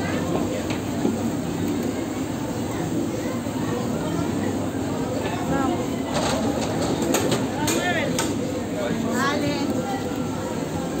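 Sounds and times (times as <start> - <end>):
murmur of background voices: 0.0 - 11.0.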